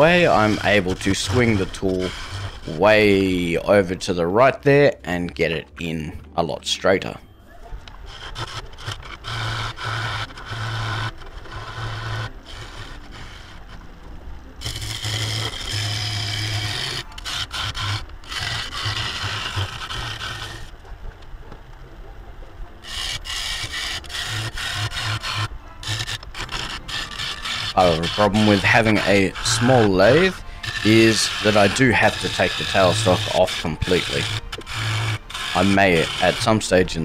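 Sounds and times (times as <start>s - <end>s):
gouge scraping hard wood: 0.0s - 4.1s, 8.0s - 13.9s, 14.6s - 20.8s, 22.8s - 37.0s
lathe low hum: 0.0s - 6.4s, 7.2s - 37.0s.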